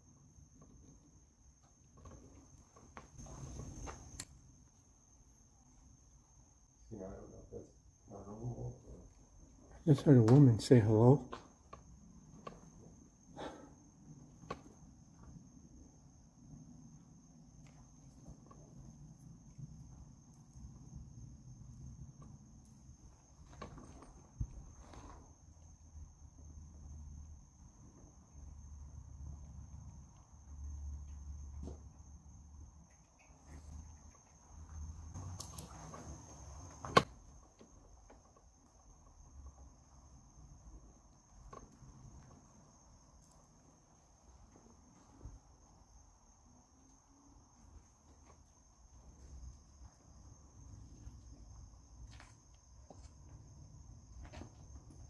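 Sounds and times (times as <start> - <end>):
crickets trilling: 0.0 - 55.0.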